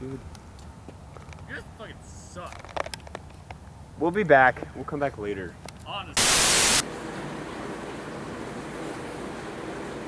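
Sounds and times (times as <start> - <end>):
steady low hiss: 6.0 - 6.8
loud white-noise static burst: 6.2 - 6.9.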